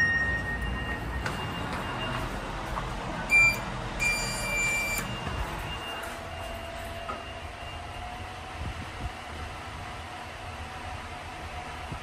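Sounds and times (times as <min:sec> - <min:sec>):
lift button beeps: 0:00.0 - 0:02.4, 0:03.3 - 0:07.4.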